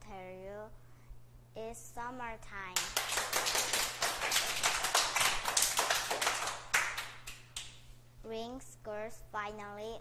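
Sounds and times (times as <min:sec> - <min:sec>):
people clapping: 0:02.8 - 0:07.8.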